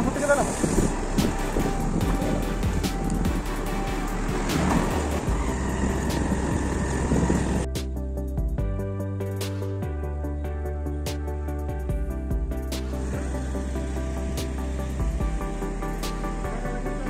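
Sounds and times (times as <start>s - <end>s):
motorbike road noise: 0.0s - 7.8s, 12.5s - 17.0s
rushing wind: 0.0s - 7.8s
background music: 0.0s - 17.0s.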